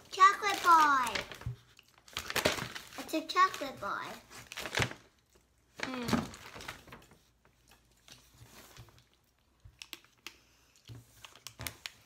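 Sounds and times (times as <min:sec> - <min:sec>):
plastic wrapper crinkling: 0:00.0 - 0:07.2.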